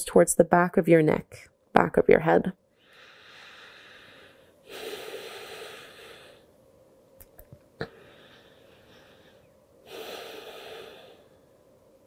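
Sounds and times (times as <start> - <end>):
person breathing out: 2.8 - 6.5, 7.8 - 11.5.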